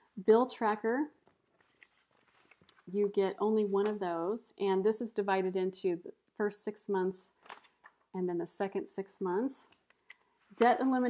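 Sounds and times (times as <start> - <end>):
woman speaking: 0.1 - 1.2, 2.8 - 7.3, 8.2 - 9.7, 10.6 - 11.0.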